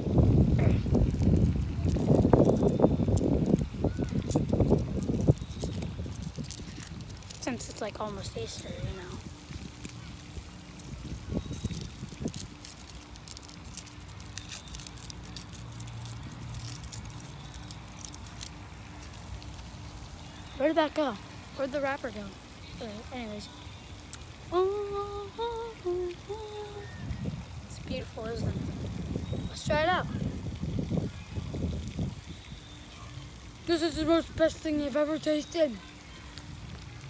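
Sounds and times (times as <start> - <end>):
wind buffeting microphone: 0.0 - 17.2, 24.5 - 32.6
foil wrapper crinkling: 0.6 - 20.6.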